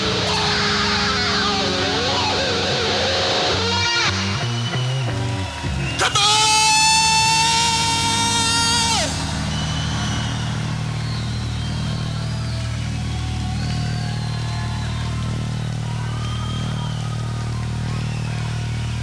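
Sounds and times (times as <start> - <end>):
electric guitar feedback note: 0.0 - 4.6
wavering whistle-like tones: 9.0 - 19.0.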